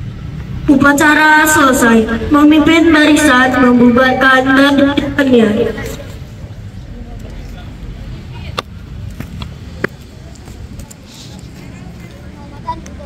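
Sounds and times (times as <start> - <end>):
faint voices: 9.6 - 13.0.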